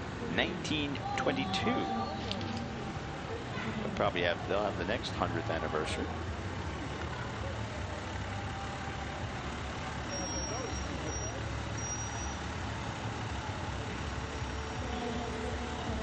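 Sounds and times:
diesel engine low rumble: 0:00.0 - 0:16.0.

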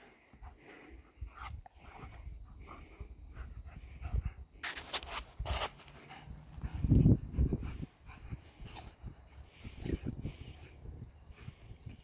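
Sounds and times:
dogs scuffling on sand: 0:04.6 - 0:06.9.

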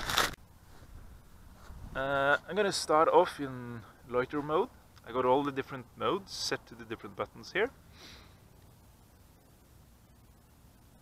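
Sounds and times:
light wind rumble: 0:00.0 - 0:11.0.

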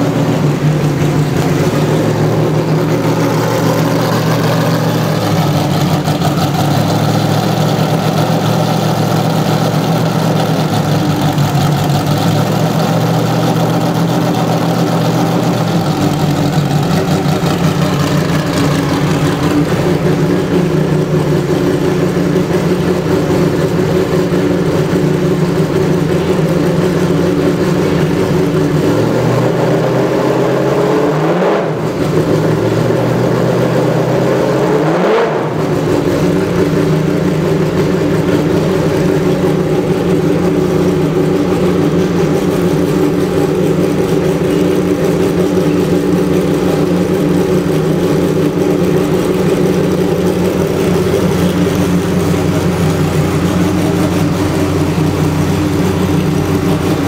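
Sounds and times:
race car engine idling: 0:00.0 - 0:57.0.

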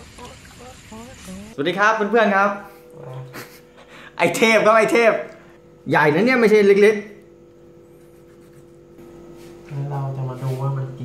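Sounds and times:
steady low hum: 0:00.0 - 0:11.0
man talking: 0:09.7 - 0:11.0.

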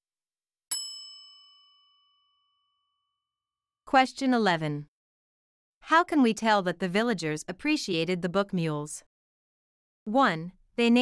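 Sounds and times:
bell-like chime: 0:00.7 - 0:03.3.

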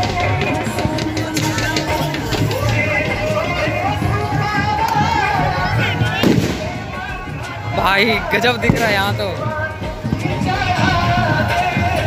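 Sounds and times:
crowd voices: 0:00.0 - 0:12.0
music from loudspeakers: 0:00.0 - 0:12.0
firecracker bang: 0:06.1 - 0:07.3, 0:08.2 - 0:11.1.

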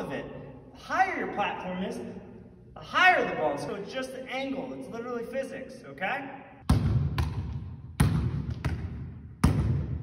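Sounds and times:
volleyball smacks: 0:06.7 - 0:10.0.

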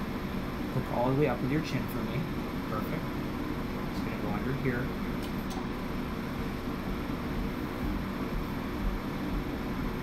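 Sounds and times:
laser unit mechanical hum: 0:00.0 - 0:10.0.

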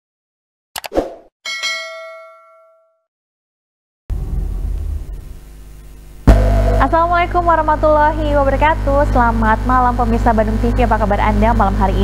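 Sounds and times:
notification bell ding: 0:01.5 - 0:03.0.

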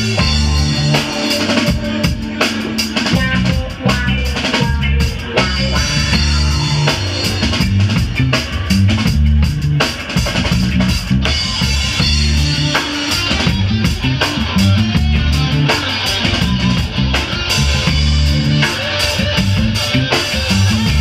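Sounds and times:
drum kit: 0:00.0 - 0:21.0
electric bass line: 0:00.0 - 0:21.0
electric guitar: 0:00.0 - 0:21.0.

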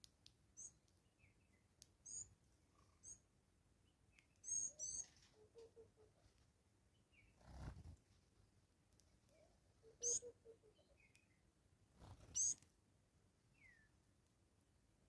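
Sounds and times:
high thin bird calls: 0:02.0 - 0:03.2, 0:04.4 - 0:06.3, 0:09.4 - 0:11.2, 0:12.2 - 0:12.6.

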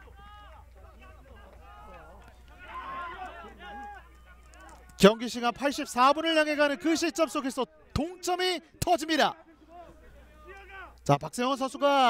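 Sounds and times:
distant players shouting: 0:00.0 - 0:12.0.

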